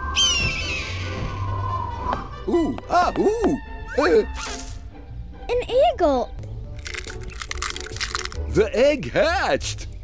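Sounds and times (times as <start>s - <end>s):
eagle screech sound effect: 0.0s - 2.1s
background music: 0.0s - 10.0s.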